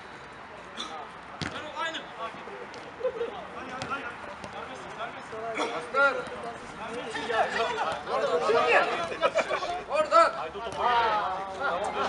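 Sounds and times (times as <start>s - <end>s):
football kick thud: 1.4s - 1.6s
players shouting: 5.8s - 12.0s.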